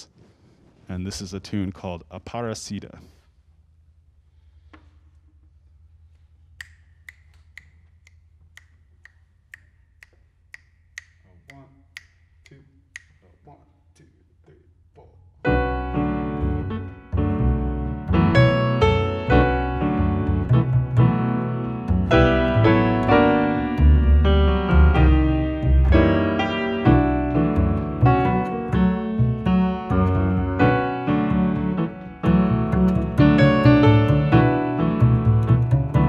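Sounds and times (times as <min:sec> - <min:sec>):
finger snaps keeping a beat: 0:06.5 - 0:13.4, 0:32.7 - 0:34.4
grand piano: 0:15.4 - 0:36.0
upright double bass: 0:15.4 - 0:36.0.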